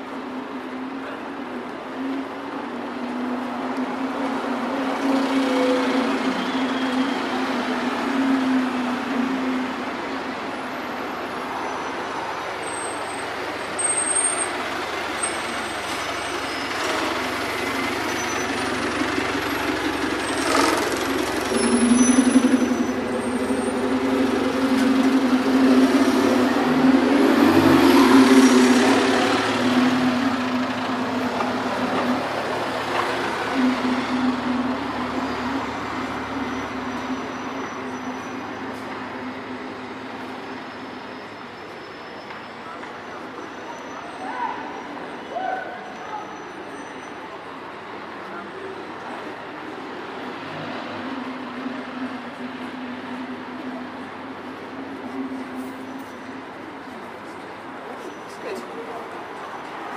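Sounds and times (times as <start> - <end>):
heavy vehicle engine humming: 0.0 - 44.0, 45.8 - 59.9
city street traffic: 0.0 - 59.9.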